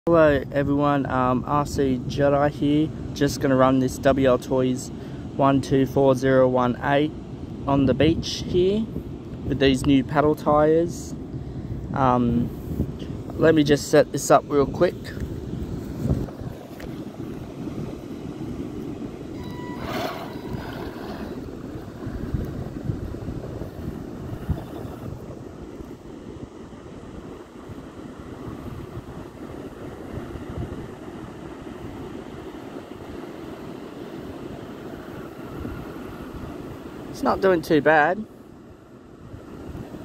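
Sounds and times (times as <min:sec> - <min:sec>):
wind rumbling on microphone: 0:06.7 - 0:37.2, 0:38.6 - 0:40.0
surf: 0:19.3 - 0:25.3
electric motor whine: 0:19.4 - 0:21.6.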